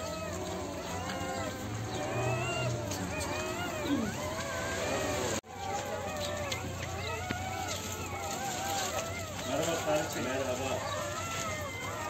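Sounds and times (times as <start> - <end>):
puppies whining: 0.0 - 12.0.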